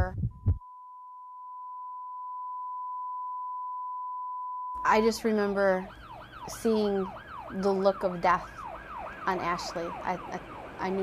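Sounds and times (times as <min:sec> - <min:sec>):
heartbeat thump: 0:00.0 - 0:00.6
continuous monitor beep tone: 0:00.3 - 0:11.0.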